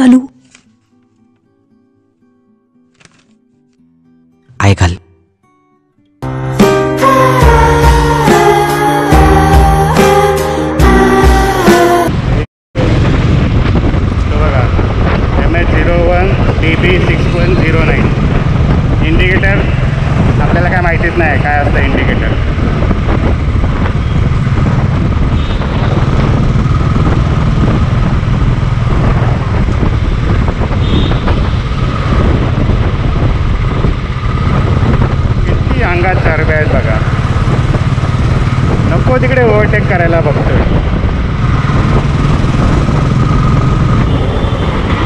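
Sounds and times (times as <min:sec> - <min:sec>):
road and wind noise: 0:06.4 - 0:45.0
motorcycle engine running: 0:12.9 - 0:45.0.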